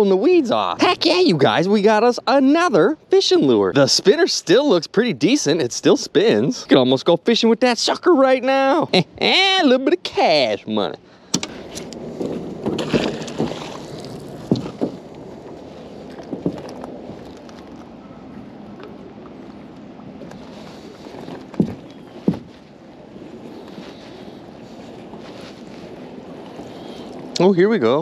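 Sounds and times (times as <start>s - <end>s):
water lapping around boat: 11.0s - 28.0s
knocks against boat: 12.2s - 15.1s, 21.5s - 22.5s.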